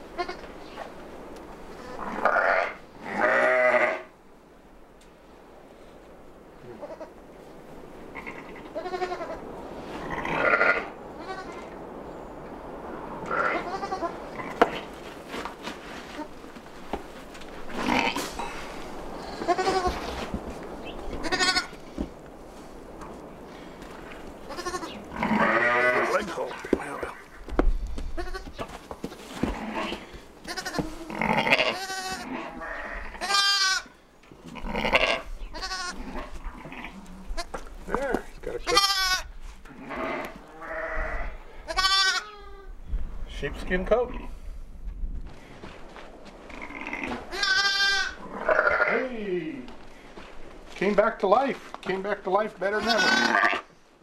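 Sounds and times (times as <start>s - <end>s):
sheep bleating: 1.8s - 4.1s, 8.2s - 9.4s, 10.1s - 11.7s, 13.2s - 14.6s, 19.2s - 20.1s, 21.2s - 21.8s, 24.5s - 26.3s, 29.4s - 33.9s, 34.6s - 37.6s, 38.6s - 42.7s, 46.6s - 49.1s, 52.8s - 53.7s.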